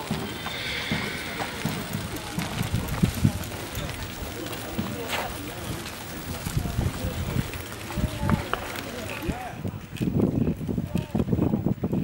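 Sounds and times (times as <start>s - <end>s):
people talking in background: 0.0s - 12.0s
horse whinnying: 0.1s - 2.0s.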